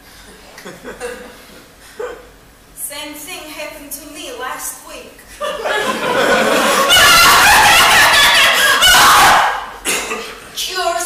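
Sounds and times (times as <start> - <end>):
audience laughing: 5.4 - 9.2.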